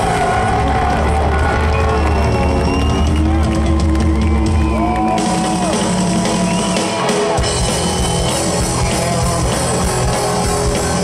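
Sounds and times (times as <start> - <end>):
rock band playing loud: 0.0 - 11.0.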